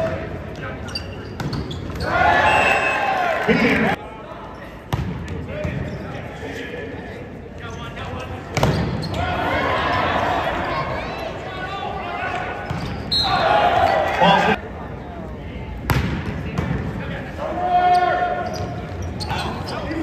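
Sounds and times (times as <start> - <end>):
crowd voices: 0.0 - 20.0
players shouting: 2.0 - 4.0, 9.0 - 14.6.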